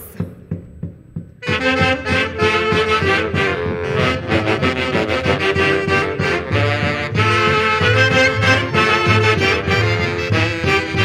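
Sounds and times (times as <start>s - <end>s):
steady drum beat: 0.0s - 11.0s
folk band with saxophones: 1.4s - 11.0s.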